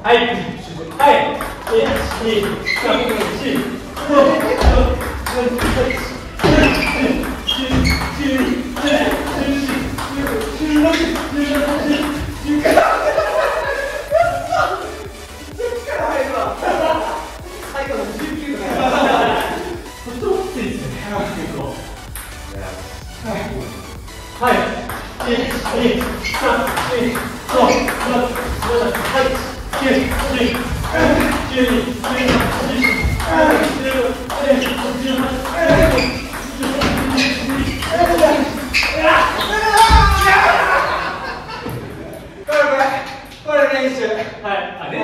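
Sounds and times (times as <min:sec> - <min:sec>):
players' voices: 0:00.0 - 0:45.0
rackets striking ball: 0:24.8 - 0:40.2.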